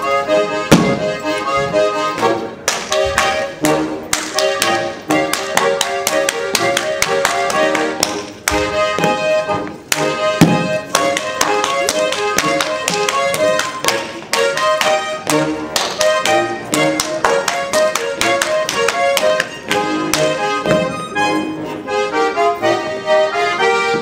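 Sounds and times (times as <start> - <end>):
accordion folk dance music: 0.0 - 24.0
dancer slapping thighs and shoes: 0.6 - 21.0.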